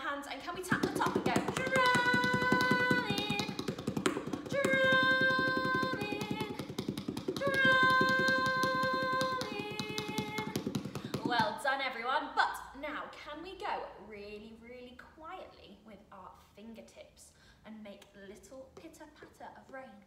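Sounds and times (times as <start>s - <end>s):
palms drumming on plastic frisbee: 0.6s - 11.6s.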